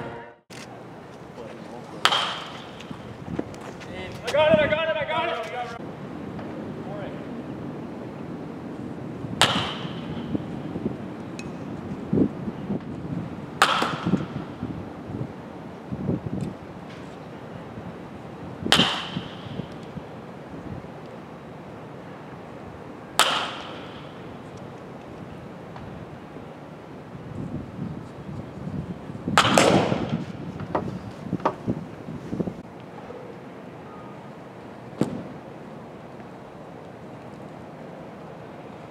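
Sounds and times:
baseball bat cracking balls: 0:00.5 - 0:04.4, 0:09.4 - 0:10.5, 0:13.6 - 0:14.6, 0:18.7 - 0:20.0, 0:23.1 - 0:26.0, 0:29.3 - 0:31.7, 0:35.0 - 0:35.4.

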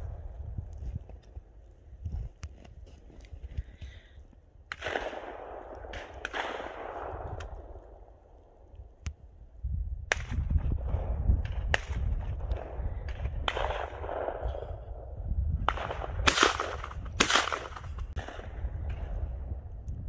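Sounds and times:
wind rumble on microphone: 0:00.0 - 0:20.0
loud shotgun shots: 0:04.7 - 0:07.7, 0:10.1 - 0:14.8, 0:15.7 - 0:19.1
distant gunshots: 0:04.7 - 0:08.1, 0:10.1 - 0:14.9, 0:15.6 - 0:19.2.

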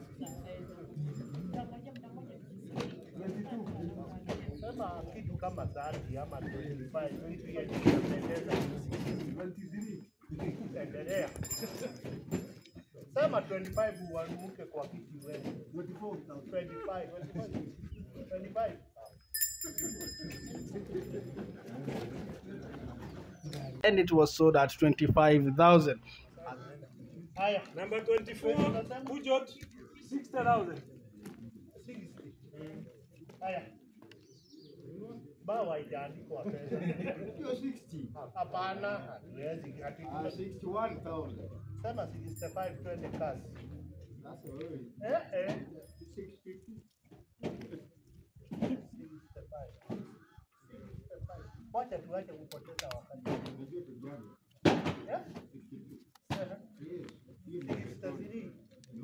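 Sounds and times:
murmur of voices: 0:00.0 - 0:59.0
distant men talking: 0:19.4 - 0:33.0, 0:34.4 - 0:46.8.

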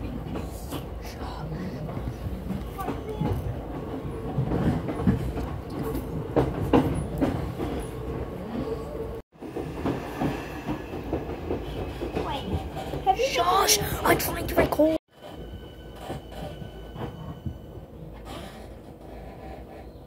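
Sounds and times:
train wheels rumbling on track: 0:00.0 - 0:20.0.

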